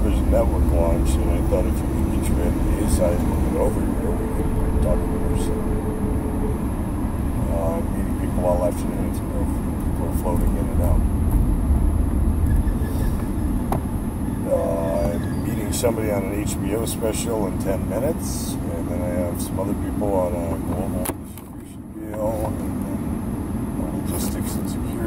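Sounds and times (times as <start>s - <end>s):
road and engine rumble: 0.0s - 25.0s.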